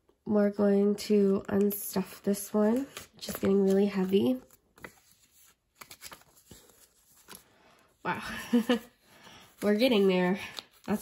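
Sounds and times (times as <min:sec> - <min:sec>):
banknotes rustling and flicking: 0:01.1 - 0:08.0, 0:08.8 - 0:11.0.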